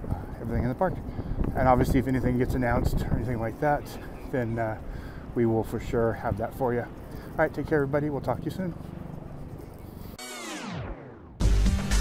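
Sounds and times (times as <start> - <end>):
faint outdoor background noise: 0.0 - 10.2
tones sweeping down in pitch: 10.2 - 11.4.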